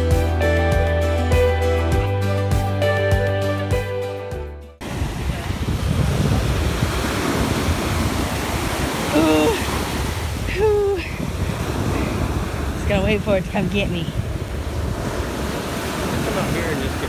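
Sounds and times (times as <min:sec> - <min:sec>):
background music: 0:00.0 - 0:04.8
ocean surf washing: 0:04.8 - 0:17.0
wind buffeting microphone: 0:04.8 - 0:17.0.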